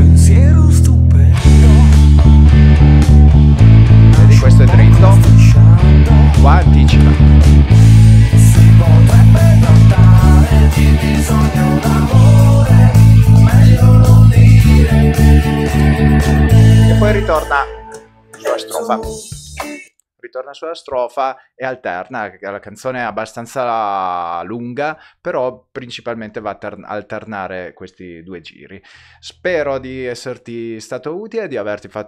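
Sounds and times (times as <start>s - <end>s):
electric bass guitar: 0.0s - 19.6s
drums: 1.3s - 17.6s, 18.4s - 19.9s.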